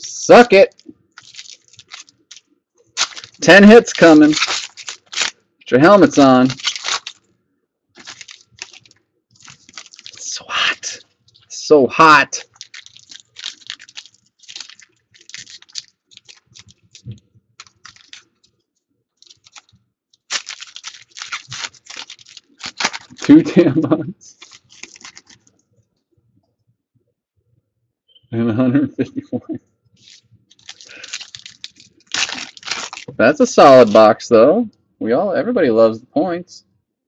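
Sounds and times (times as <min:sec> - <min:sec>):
wrapper crinkling and tearing: 0:00.6 - 0:07.3, 0:08.0 - 0:11.5, 0:12.1 - 0:18.5, 0:19.2 - 0:23.5, 0:24.3 - 0:25.5, 0:30.0 - 0:34.1.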